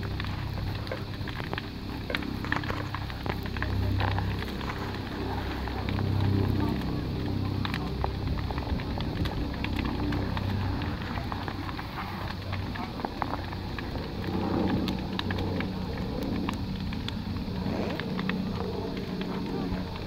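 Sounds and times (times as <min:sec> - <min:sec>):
bonfire crackling and popping: 0:00.0 - 0:20.0
low fire rumble: 0:00.0 - 0:20.0.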